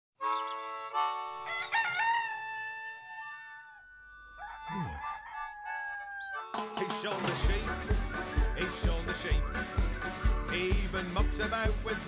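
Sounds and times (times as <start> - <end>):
rooster crowing: 1.4 - 6.6.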